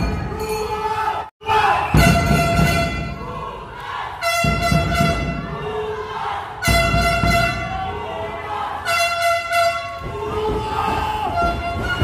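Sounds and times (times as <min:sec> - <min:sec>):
crowd noise: 0:00.0 - 0:12.0
air horn blasts: 0:01.5 - 0:03.3, 0:04.2 - 0:05.6, 0:06.6 - 0:08.0, 0:08.8 - 0:10.2.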